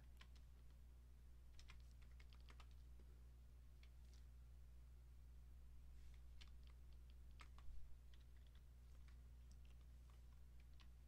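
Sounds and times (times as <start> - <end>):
keyboard typing: 0.0 - 0.6, 1.5 - 2.8, 6.2 - 11.0
low electrical hum: 0.0 - 11.0.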